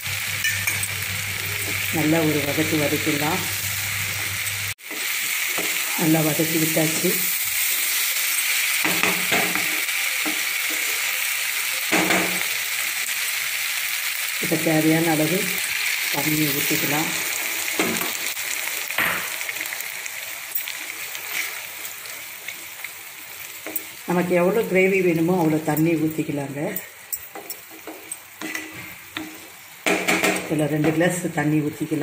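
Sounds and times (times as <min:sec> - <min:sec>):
vegetables sizzling in hot oil: 0:00.0 - 0:32.0.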